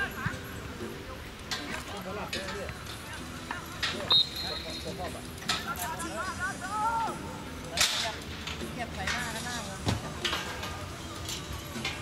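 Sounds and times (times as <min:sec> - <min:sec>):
football pitch outdoor noise: 0:00.0 - 0:12.0.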